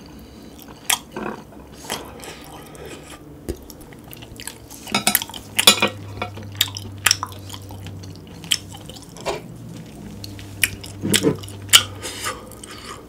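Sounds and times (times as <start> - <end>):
wet chewing noises: 0.5 - 5.7, 6.3 - 13.0.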